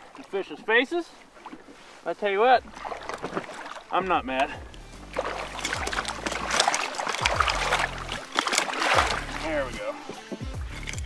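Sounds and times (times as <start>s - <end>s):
boat engine humming: 0.0s - 11.0s
fish splashing in water: 2.6s - 4.0s, 4.6s - 9.5s.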